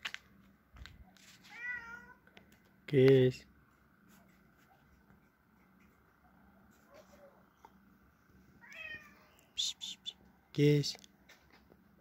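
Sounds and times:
cat meowing: 1.4s - 2.2s, 8.6s - 9.6s.

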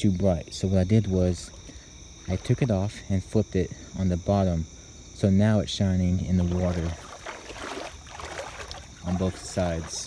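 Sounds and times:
crickets chirping: 0.0s - 10.0s
water lapping against boat: 6.3s - 10.0s.

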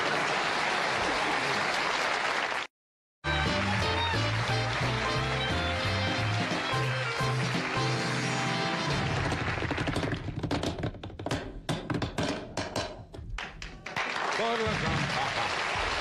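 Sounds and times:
band music with walking bass: 3.3s - 7.9s
sharp hand claps: 13.4s - 16.0s.

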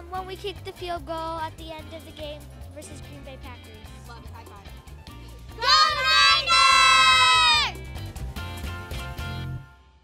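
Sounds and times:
background music with steady beat: 0.0s - 10.0s
person cheering in a high voice: 5.6s - 7.8s.

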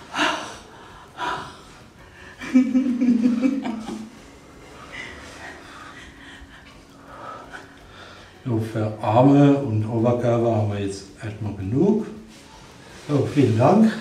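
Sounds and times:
people laughing: 2.4s - 4.3s
people breathing out hard: 4.6s - 8.4s.

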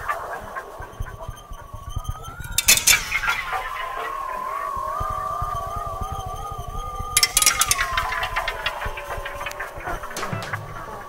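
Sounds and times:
sustained wavering tones: 0.0s - 11.0s
rattling clicks: 2.4s - 3.6s, 7.2s - 9.6s, 10.2s - 11.0s.

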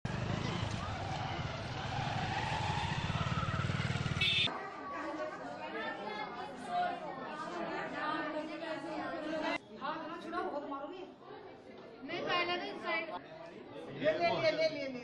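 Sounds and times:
vehicle engine running: 0.0s - 4.5s
street noise: 0.0s - 13.9s
voices: 0.1s - 14.0s
indoor chatter of voices: 4.5s - 15.0s.

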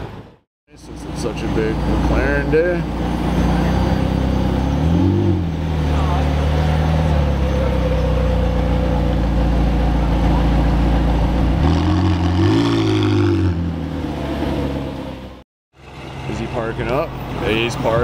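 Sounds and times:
car engine revving: 1.4s - 15.4s.

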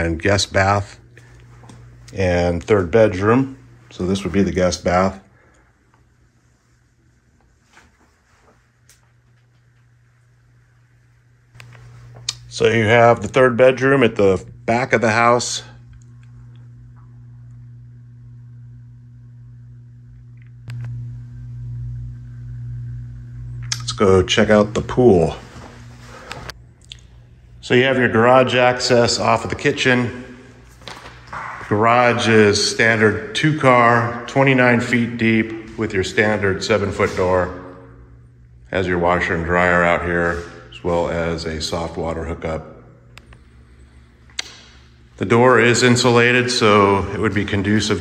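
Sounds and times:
low electrical hum: 0.0s - 48.0s
sharp click: 44.3s - 44.8s.

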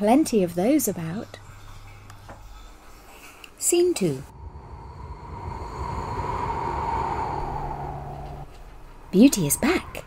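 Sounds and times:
breathy whoosh of blowing: 4.3s - 8.8s.

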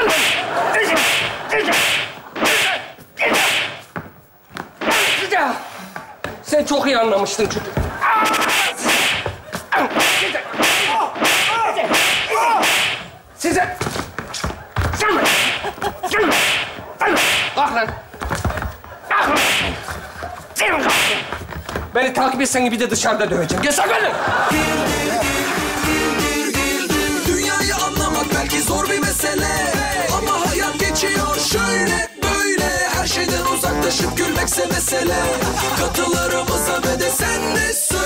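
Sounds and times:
hard slapping blows: 0.0s - 5.4s, 7.8s - 21.8s.

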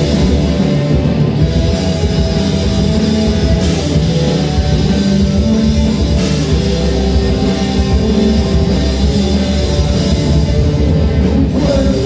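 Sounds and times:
bass guitar: 0.0s - 12.0s
drum kit: 0.0s - 12.0s
electric guitars: 0.0s - 12.0s.

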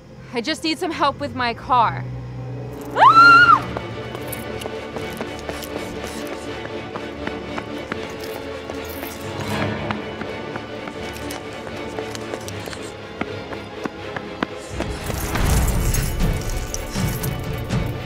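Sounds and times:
tense droning film score: 0.0s - 18.0s
footsteps running on asphalt: 3.6s - 15.2s.

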